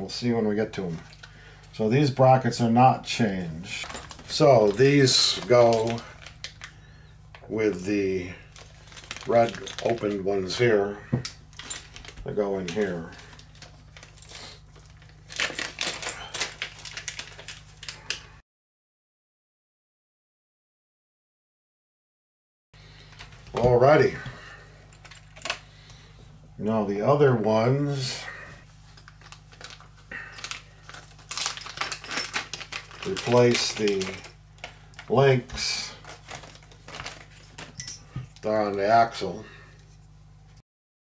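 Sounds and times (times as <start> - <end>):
plastic bag crinkling: 3.6 - 7.0, 7.7 - 18.3, 28.8 - 38.6
metal parts clicking and clattering: 3.8 - 6.4, 11.2 - 18.0, 24.9 - 25.6, 30.4 - 34.4, 36.3 - 38.2.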